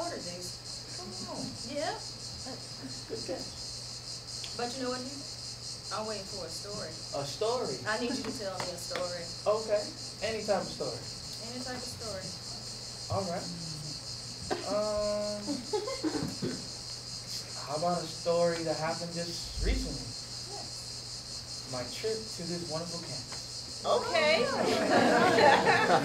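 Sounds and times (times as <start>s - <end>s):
crickets chirping: 0.0s - 26.0s.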